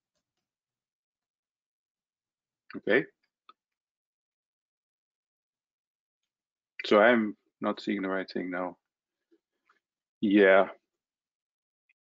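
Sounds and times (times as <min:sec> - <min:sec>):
person speaking: 0:06.8 - 0:08.7, 0:10.2 - 0:10.7.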